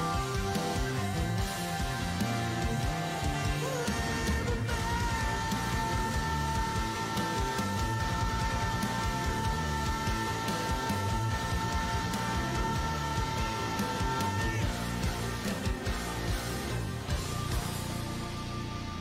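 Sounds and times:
rock band playing: 0.0 - 19.0.

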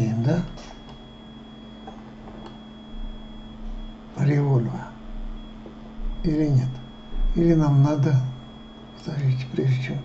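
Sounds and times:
electrical hum: 0.0 - 10.0
high whine: 0.0 - 10.0
soft low thumps: 2.6 - 4.1, 5.0 - 7.7.

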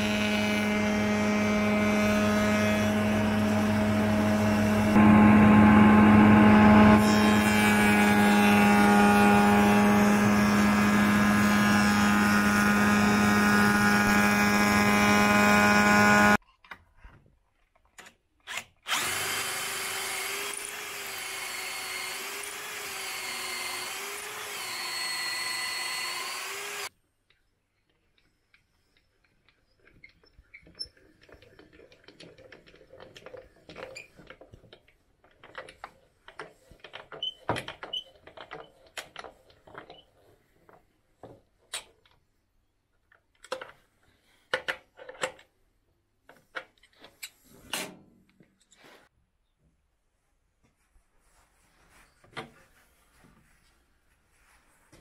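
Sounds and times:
cutter working wood: 0.0 - 16.4, 18.6 - 26.9
spindle moulder humming: 0.0 - 16.4.

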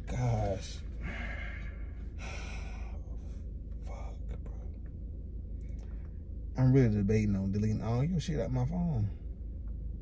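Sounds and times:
steady low hum: 0.0 - 10.0
man sighing: 1.0 - 3.2.

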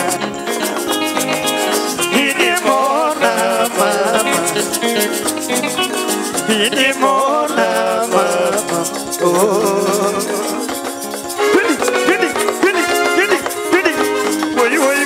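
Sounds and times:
fast shaker rhythm: 0.0 - 15.0
plucked guitar melody: 0.0 - 15.0.

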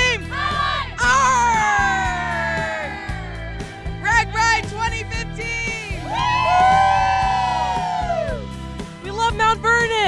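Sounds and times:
background music: 0.0 - 10.0
group cheering whoop: 1.2 - 3.4, 6.0 - 8.5.

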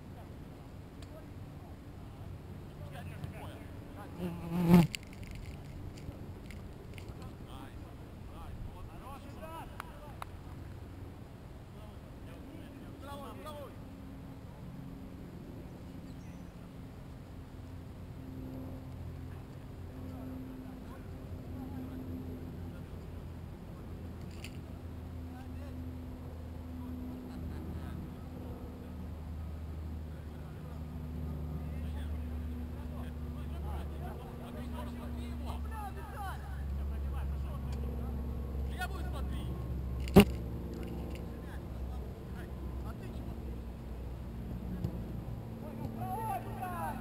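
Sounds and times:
distant shouts: 45.6 - 47.0
loud shout: 46.0 - 47.0.

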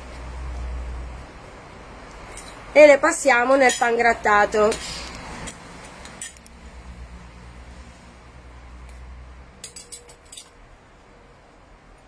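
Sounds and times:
metal spoon clinking on bowl: 9.6 - 10.6.

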